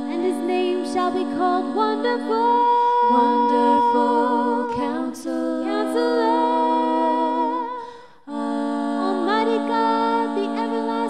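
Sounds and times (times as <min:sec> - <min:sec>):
women singing in harmony: 0:00.0 - 0:11.0.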